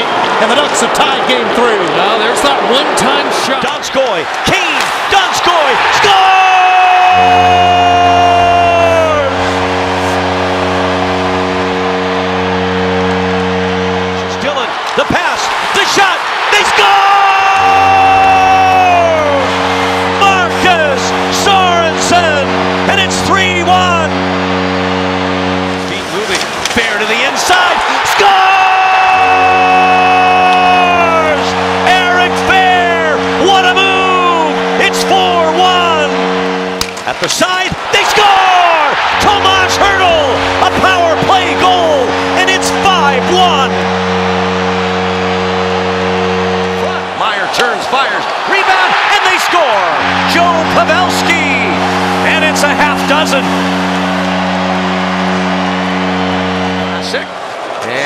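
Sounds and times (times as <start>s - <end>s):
arena goal horn blasts: 0.0s - 58.0s
crowd cheering: 0.0s - 58.0s
goal music: 5.8s - 57.6s.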